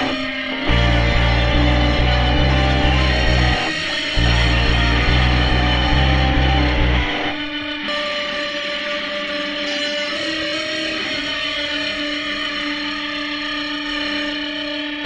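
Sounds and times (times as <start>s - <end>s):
full band rock playing: 0.0s - 9.0s
electric guitar sustained notes: 0.0s - 15.0s.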